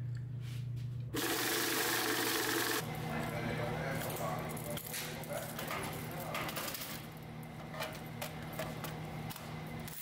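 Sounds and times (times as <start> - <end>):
small machine whirring: 1.1 - 2.9.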